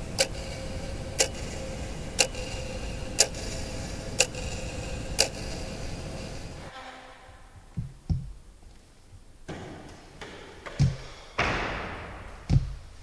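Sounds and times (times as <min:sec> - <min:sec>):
clock ticking: 0:00.0 - 0:06.7
steady low rumble: 0:00.0 - 0:06.7.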